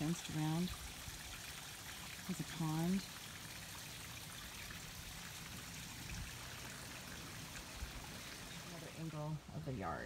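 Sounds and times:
trickle of running water: 0.0s - 10.0s.

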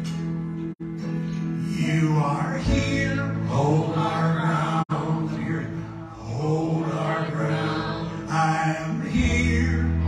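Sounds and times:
piano: 0.0s - 10.0s
chant-like lead melody: 1.7s - 10.0s
electric bass: 9.0s - 10.0s.

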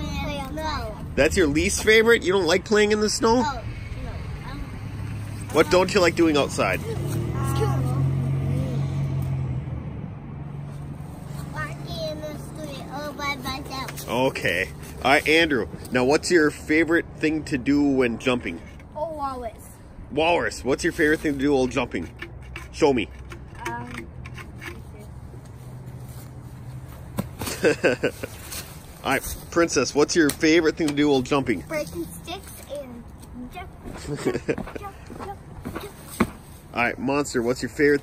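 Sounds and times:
low outdoor rumble: 0.0s - 21.3s
vehicle passing: 0.0s - 38.0s.

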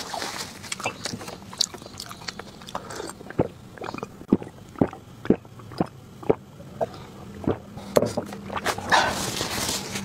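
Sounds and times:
lip and tongue clicks: 0.7s - 6.4s.

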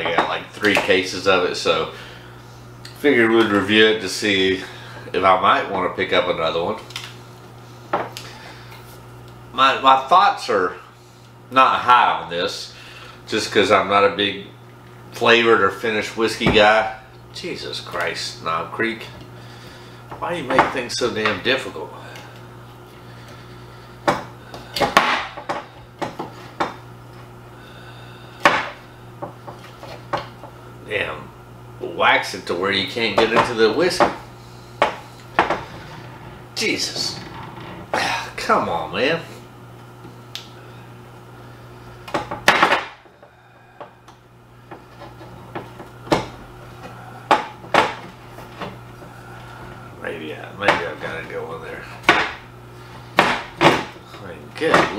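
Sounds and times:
low hum: 33.4s - 54.8s.

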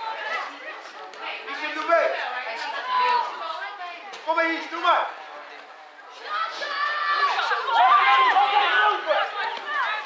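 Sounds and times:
overlapping voices chattering: 0.0s - 10.0s.

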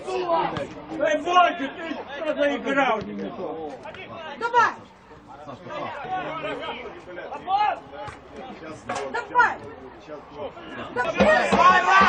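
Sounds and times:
overlapping chatter: 0.0s - 12.0s
men shouting: 10.8s - 12.0s.

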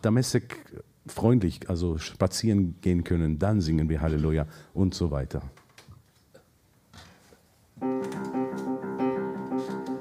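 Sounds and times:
piano playing held chords: 7.8s - 10.0s.

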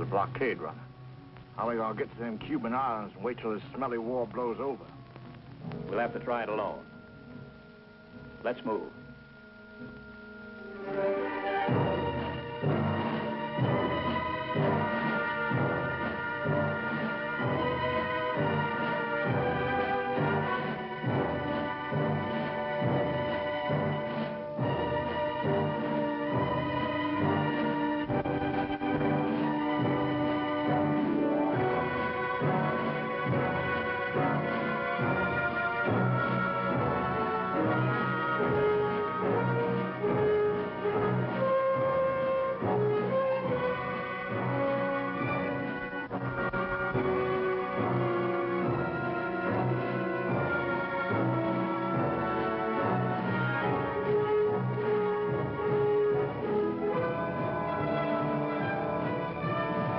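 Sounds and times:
orchestral music with brass: 0.0s - 59.9s
pulsing low beat: 4.3s - 41.2s.

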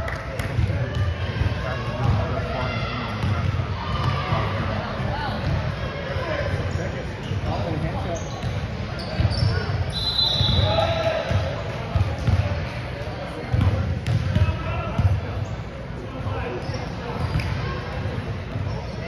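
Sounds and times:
voices echoing in a hall: 0.0s - 19.0s.

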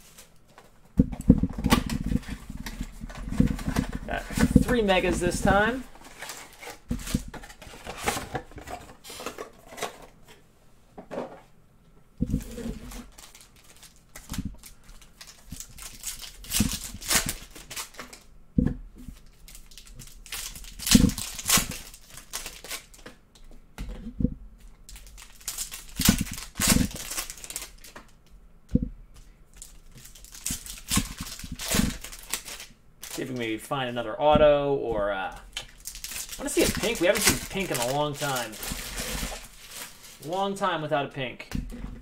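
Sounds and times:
packaging rustling: 0.0s - 10.2s, 12.2s - 18.3s, 19.1s - 23.2s, 24.9s - 28.2s, 29.5s - 33.6s, 35.4s - 40.6s.

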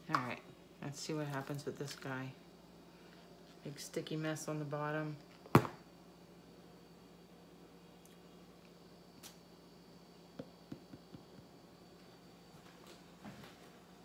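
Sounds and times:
cup knocking on canvas: 10.4s - 11.5s.

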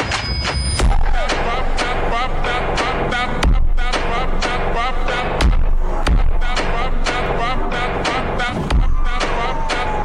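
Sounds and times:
background music with steady beat: 0.0s - 10.0s
deep bass hit: 0.8s - 9.5s.

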